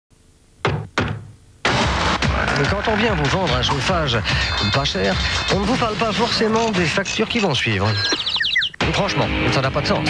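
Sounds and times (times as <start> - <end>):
knocks on a door: 0.6 - 1.3.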